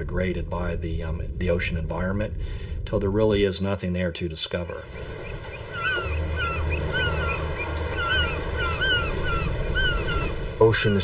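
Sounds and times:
steady low rumble: 0.0s - 3.7s, 4.7s - 10.8s
gulls calling: 4.8s - 11.0s.

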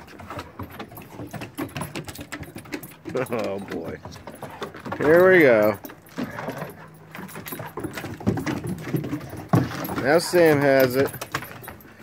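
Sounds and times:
collar tags jingling: 0.0s - 12.0s
paws clattering on wooden deck: 0.0s - 12.0s.

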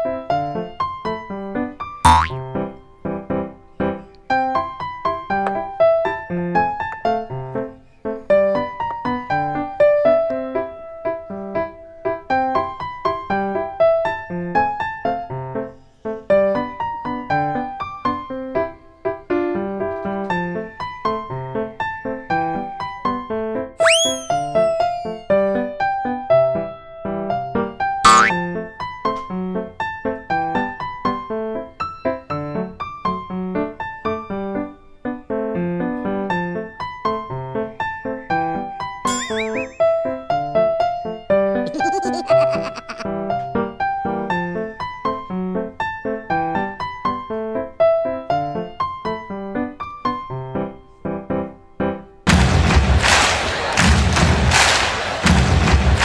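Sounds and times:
falling boing glide with thud: 2.1s - 2.4s, 28.1s - 28.4s
upward sweep sound effect: 23.8s - 25.2s, 39.1s - 40.0s
electric piano music: 23.8s - 25.3s, 39.1s - 40.2s.

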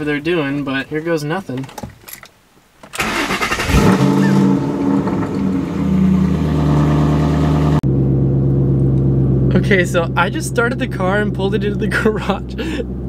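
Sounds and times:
car engine starting and idling: 2.9s - 13.0s.

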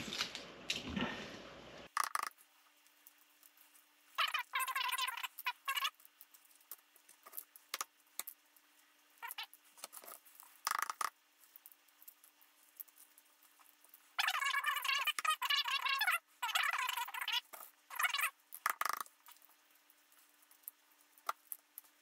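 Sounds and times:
eggshells crackling as peeled: 1.9s - 22.0s.

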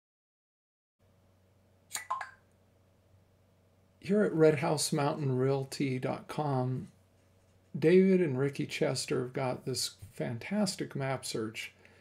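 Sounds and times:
faint steady hum: 1.0s - 12.0s
sharp clicks: 1.9s - 2.4s.

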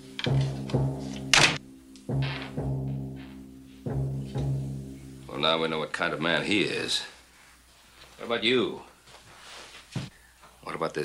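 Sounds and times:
dramatic orchestral music: 0.0s - 5.6s
timpani strokes: 0.0s - 6.6s.

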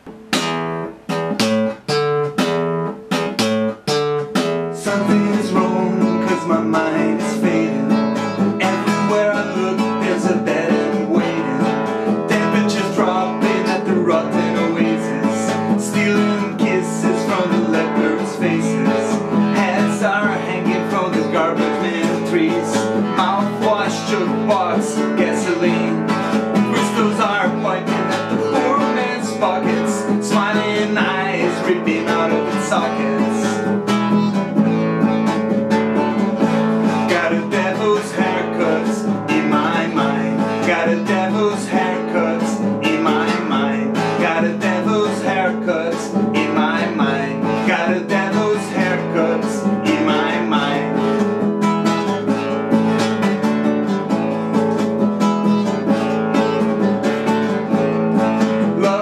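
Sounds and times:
classical guitar strumming: 0.0s - 59.0s.

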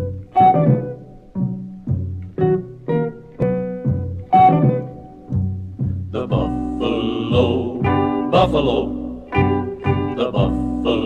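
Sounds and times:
low string instrument notes: 0.0s - 11.0s.

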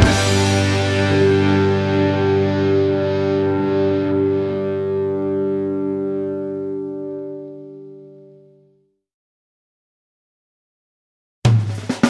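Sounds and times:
distorted electric guitar chord: 0.0s - 8.9s.

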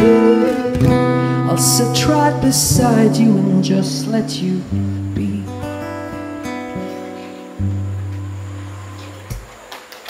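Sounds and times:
acoustic guitar chord ringing: 0.0s - 9.3s.

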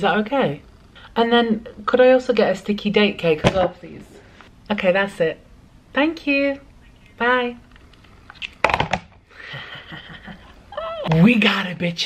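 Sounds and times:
woman squealing: 10.7s - 11.1s.

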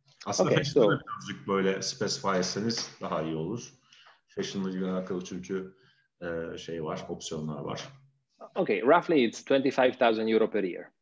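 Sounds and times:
person talking over video call: 0.0s - 11.0s.

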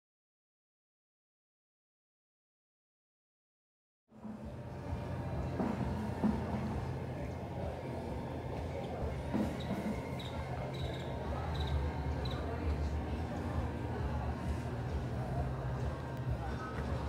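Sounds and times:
indistinct voices: 4.2s - 17.0s.

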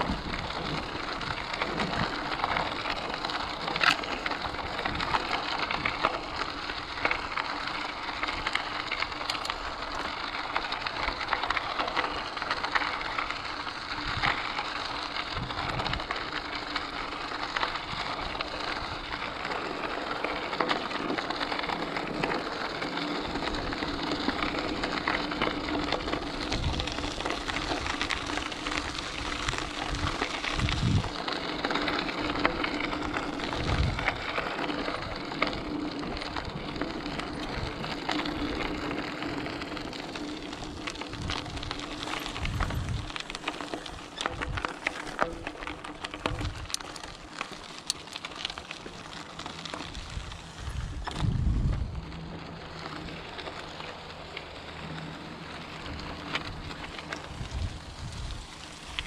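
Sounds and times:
bike tyres crunching on gravel: 0.0s - 59.0s.

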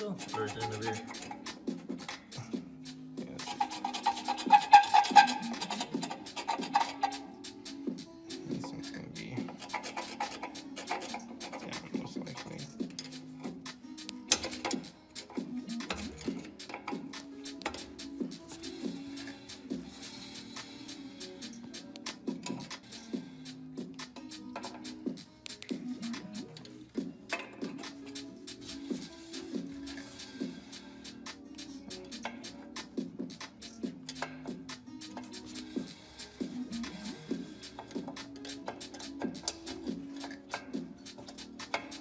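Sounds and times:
background music with bass line: 0.0s - 42.0s
screwdriver scraping and clicking: 0.2s - 2.4s, 3.4s - 7.6s, 8.6s - 42.0s
wheel turned by hand: 3.4s - 7.3s, 9.5s - 13.6s, 14.3s - 21.0s, 24.4s - 25.0s, 33.6s - 42.0s.

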